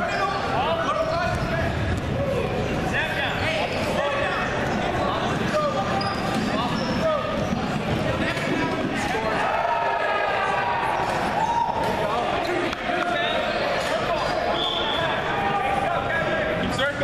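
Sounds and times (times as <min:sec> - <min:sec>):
short squeaks: 0:05.9 - 0:07.7.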